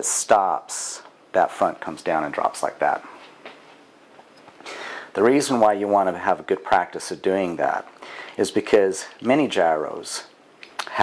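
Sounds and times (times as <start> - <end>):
faint hiss: 0.0 - 11.0
man's short in-breath: 4.6 - 5.1.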